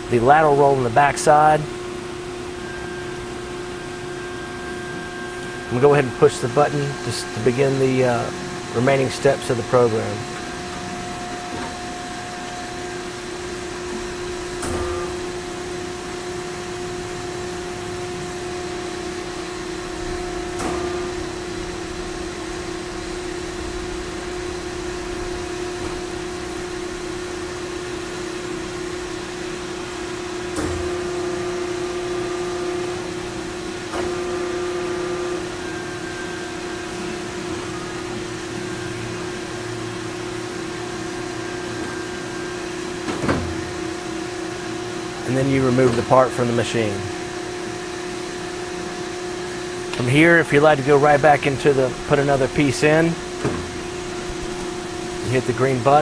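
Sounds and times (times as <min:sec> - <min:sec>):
hydraulic machine humming: 0:00.0 - 0:56.0.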